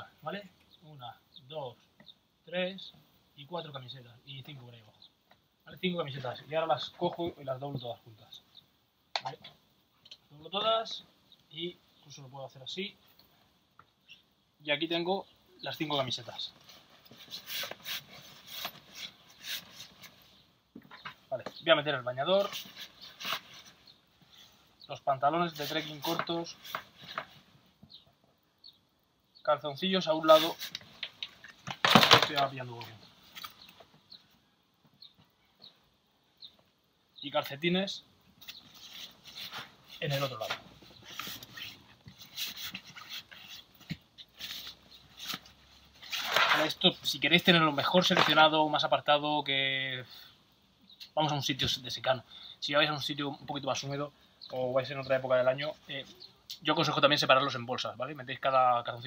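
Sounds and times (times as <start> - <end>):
fabric and nylon rustling: 16.0 - 21.6, 22.2 - 24.7, 25.3 - 27.7, 30.0 - 34.1, 38.4 - 48.6.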